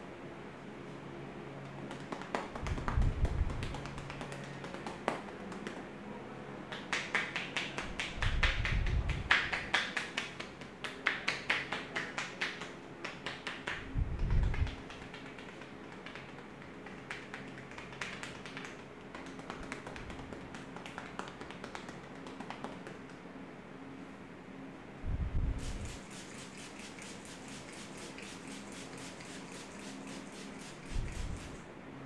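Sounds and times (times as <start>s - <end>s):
hands tapping on a head: 1.8s - 5.9s, 6.7s - 23.2s.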